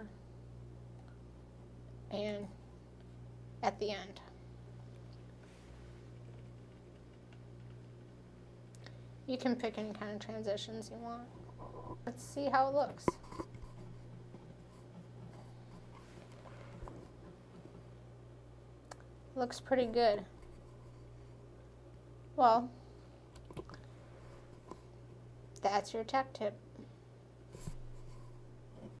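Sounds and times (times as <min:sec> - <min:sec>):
low electrical hum: 0:00.0 - 0:29.0
soft rustle: 0:05.3 - 0:06.3, 0:13.0 - 0:17.9.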